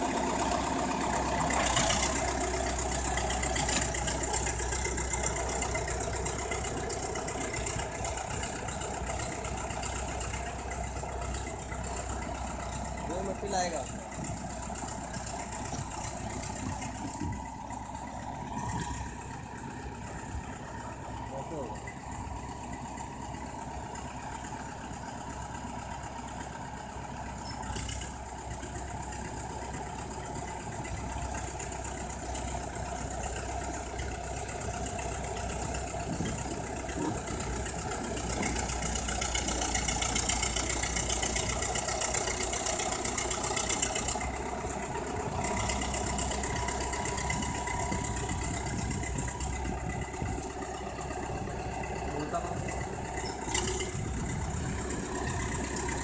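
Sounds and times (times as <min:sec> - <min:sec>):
bulldozer diesel engine running: 0:00.0 - 0:56.0.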